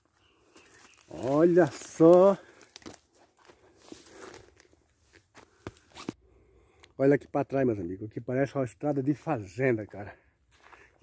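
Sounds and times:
footsteps in leaf litter: 0.0 - 5.4.

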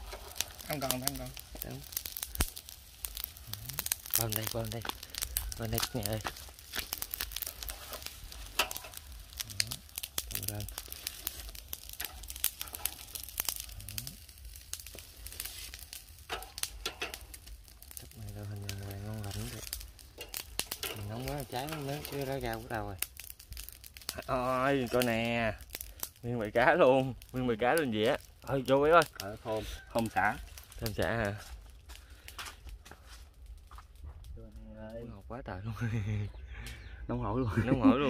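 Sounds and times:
crackling clicks of grilled fish: 0.0 - 34.0.

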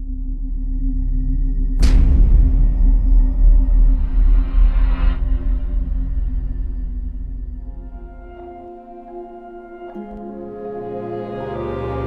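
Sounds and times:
deep rumble: 0.0 - 9.0
low steady drone: 0.0 - 12.0.

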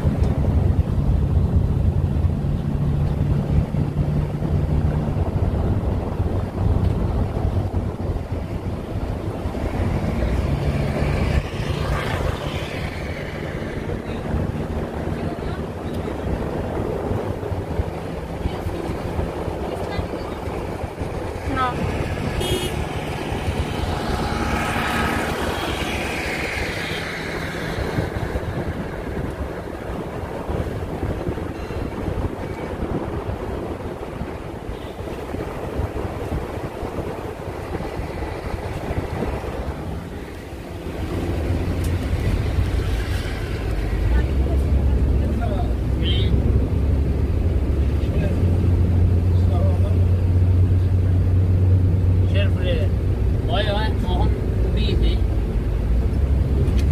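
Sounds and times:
vehicle road and engine noise: 0.0 - 56.9.

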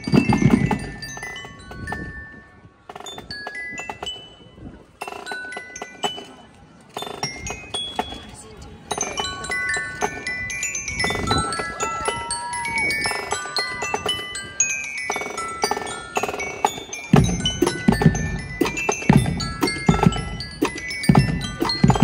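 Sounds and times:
marching drums: 0.0 - 1.4, 15.1 - 22.0
glockenspiel melody: 0.0 - 22.0.

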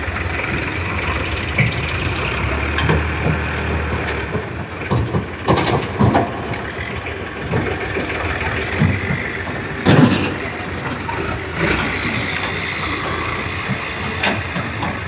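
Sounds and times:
tractor diesel engine running: 0.0 - 15.0.

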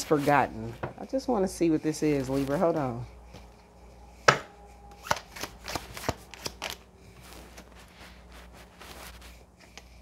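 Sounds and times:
cards being shuffled: 5.0 - 9.9
soft card rustle: 5.0 - 10.0.

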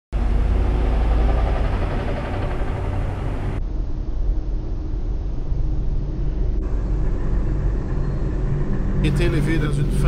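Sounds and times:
low urban background rumble: 0.2 - 10.0.

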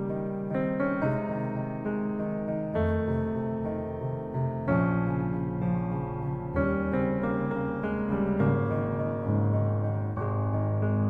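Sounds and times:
soft piano chords: 0.0 - 11.0.

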